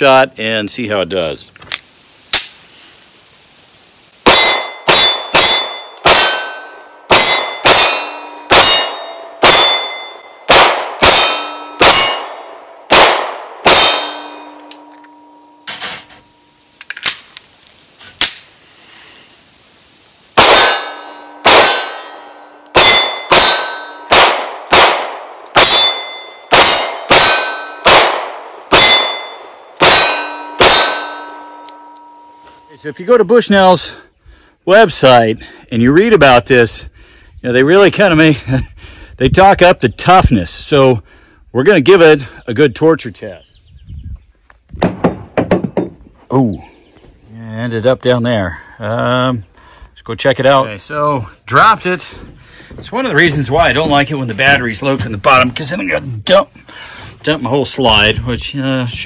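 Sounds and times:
pistol shots: 4.2s - 14.6s, 20.4s - 31.2s
steel plate target clanging: 4.3s - 12.9s, 13.6s - 16.7s, 20.4s - 24.2s, 25.6s - 27.9s, 28.7s - 33.0s.

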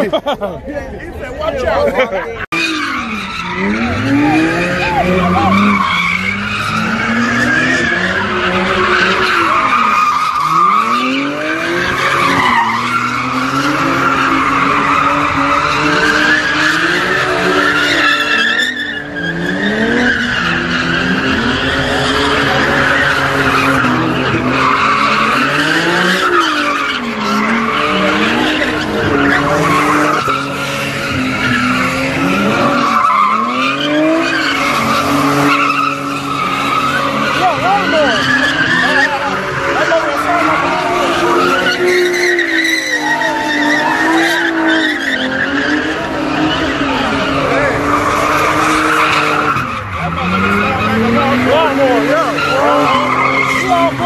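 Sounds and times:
car engines revving: 0.0s - 54.0s
tyres squealing on asphalt: 0.0s - 54.0s.

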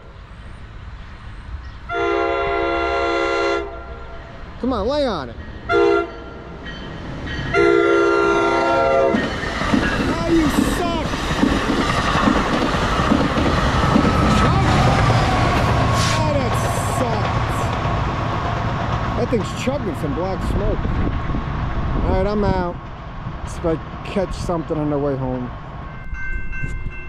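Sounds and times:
train steady tone: 0.0s - 21.5s, 22.2s - 27.0s
train horn blast: 1.9s - 4.2s, 5.6s - 6.4s, 7.5s - 9.3s
train wheels rumbling and clicking: 8.5s - 27.0s.

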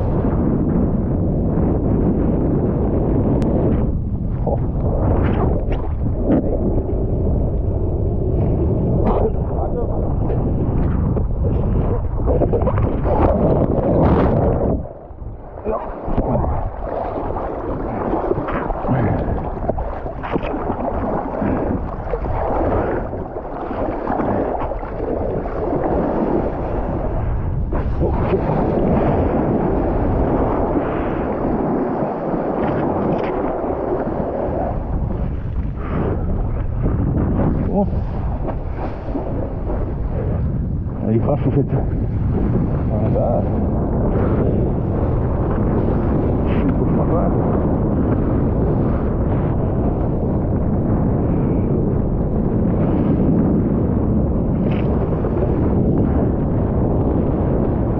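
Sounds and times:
wind buffeting microphone: 0.0s - 57.9s
rushing splashing water: 10.8s - 36.8s.

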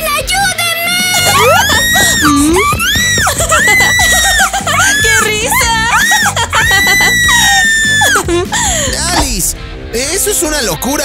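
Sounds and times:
girl screaming: 0.0s - 8.3s
background music: 0.0s - 11.0s
girl crying out: 0.9s - 9.2s.

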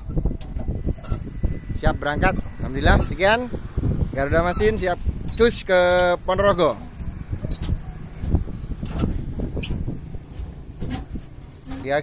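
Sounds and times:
truck engine idling: 0.1s - 12.0s.

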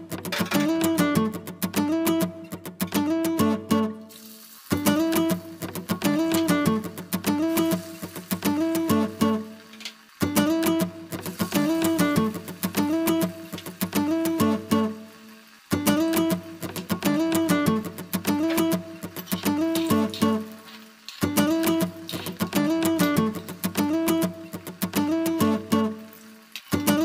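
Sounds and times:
acoustic guitar looping phrase: 0.0s - 4.1s, 4.7s - 15.1s, 15.7s - 26.1s, 26.7s - 27.0s
food deep-frying in hot oil: 4.0s - 27.0s.

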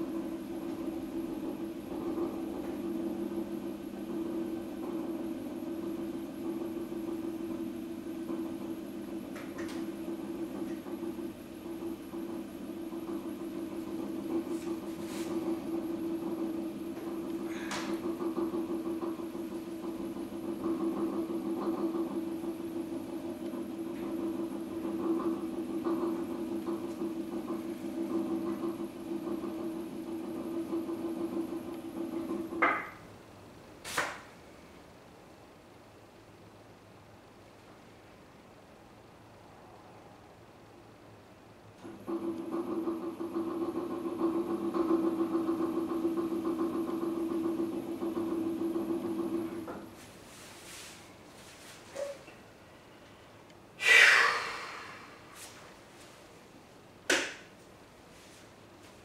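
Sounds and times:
potter's wheel motor humming: 0.0s - 33.2s, 41.7s - 50.5s.

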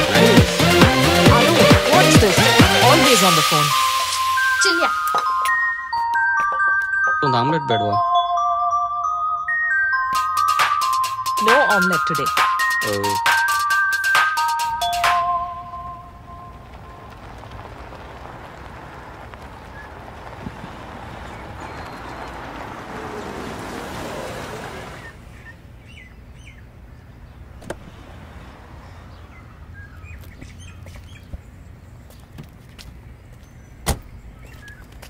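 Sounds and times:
birds chirping: 0.0s - 8.3s, 9.9s - 35.0s
car driving up and stopping: 15.2s - 25.5s, 27.3s - 32.6s.

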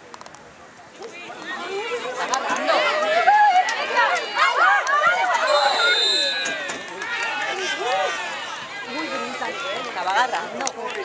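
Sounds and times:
voices calling and shouting: 0.5s - 11.0s.

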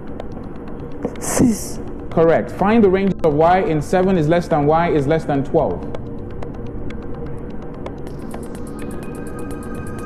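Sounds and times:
fast ticking pulse: 0.0s - 10.0s
low droning music: 0.0s - 10.0s.

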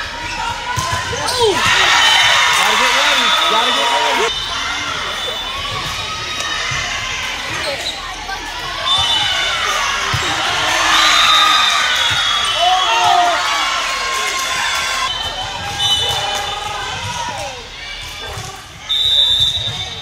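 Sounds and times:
voices of players and spectators: 0.0s - 20.0s
volleyball slaps: 0.7s - 3.8s.

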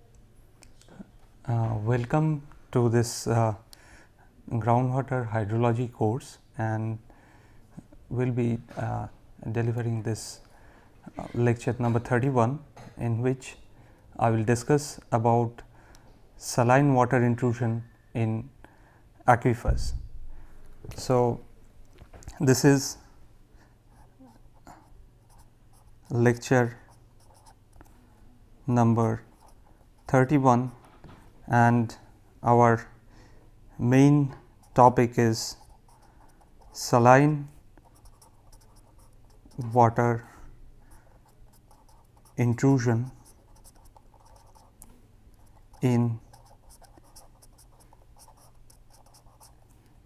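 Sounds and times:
low steady hum: 0.0s - 50.0s
pen scratching on paper: 23.9s - 27.9s, 29.2s - 30.8s, 34.4s - 37.1s, 37.8s - 40.0s, 41.2s - 44.8s, 45.4s - 49.6s.

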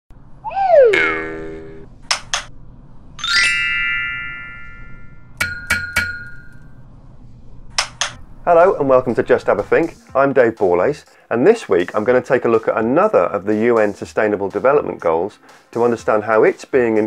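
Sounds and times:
falling pitched swoop: 0.4s - 1.9s
sharp clicks: 2.1s - 2.5s
ringing chime: 3.2s - 6.6s.

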